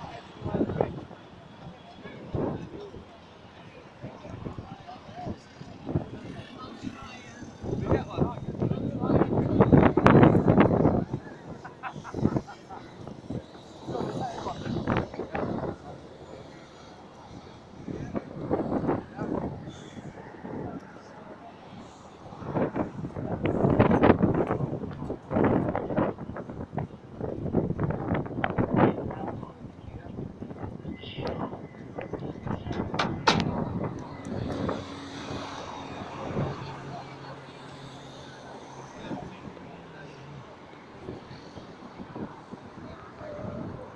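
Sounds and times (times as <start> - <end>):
people talking indistinctly: 0.0 - 26.9, 27.8 - 43.9
passing road traffic: 0.0 - 43.9
wind buffeting microphone: 0.0 - 43.9.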